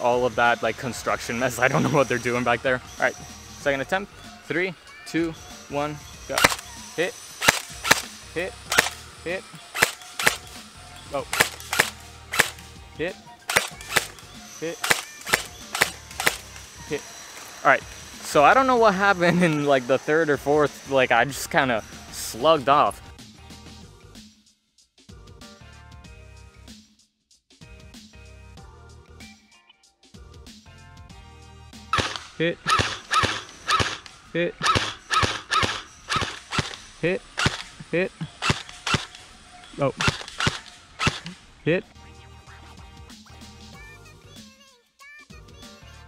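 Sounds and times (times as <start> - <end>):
quiet background music: 0.0 - 24.1
airsoft rifle single shots: 6.3 - 6.7, 7.4 - 9.0, 9.8 - 10.6, 11.3 - 12.7, 13.5 - 14.2, 14.8 - 16.5, 31.9 - 37.8, 38.4 - 39.3, 40.0 - 41.4.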